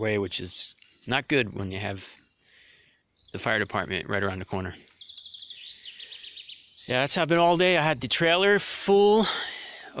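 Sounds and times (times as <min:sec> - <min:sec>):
bird singing a high trill: 0:00.2 - 0:08.6.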